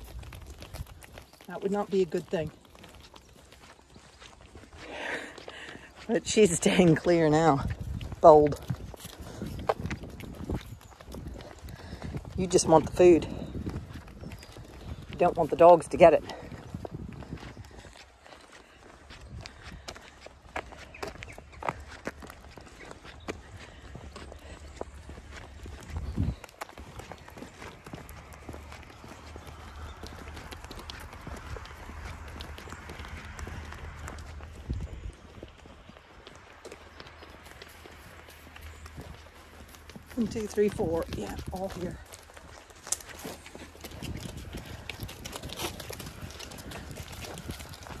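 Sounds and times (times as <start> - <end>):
sheep hooves clicking on tarmac: 0.0 - 48.0.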